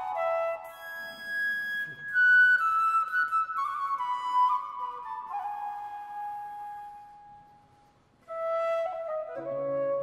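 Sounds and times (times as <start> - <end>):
flute holding a long note: 0.0 - 7.6, 8.3 - 10.0.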